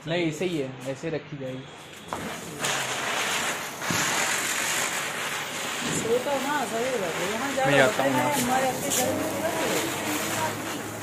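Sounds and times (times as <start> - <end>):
spinning firework hissing: 1.7 - 11.0.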